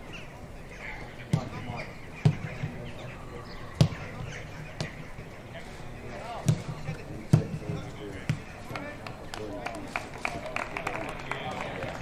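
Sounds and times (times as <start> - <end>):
players calling and shouting: 0.0 - 12.0
football kicks: 6.4 - 8.5.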